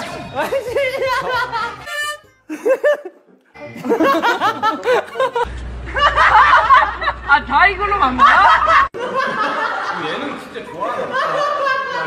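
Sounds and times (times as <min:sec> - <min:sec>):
people talking and laughing: 0:00.0 - 0:12.0
young man laughing hard: 0:00.4 - 0:03.2, 0:03.8 - 0:07.2.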